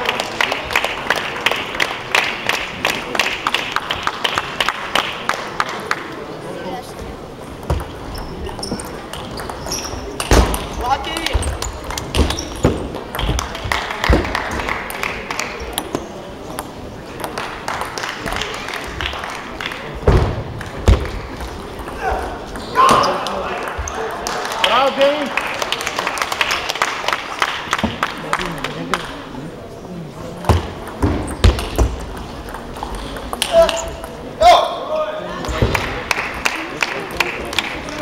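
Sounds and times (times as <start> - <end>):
table tennis balls clicking: 7.5 - 19.8, 30.4 - 34.3.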